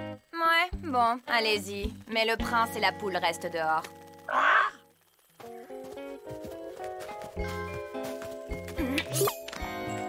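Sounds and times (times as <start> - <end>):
light background music: 0.0 - 10.0
cartoon hen squawk: 4.3 - 4.8.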